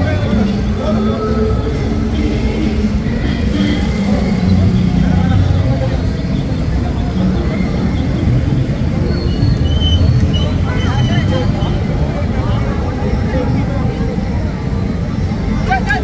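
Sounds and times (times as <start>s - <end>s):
crowd voices: 0.0s - 16.0s
vehicle engine running: 0.0s - 16.0s.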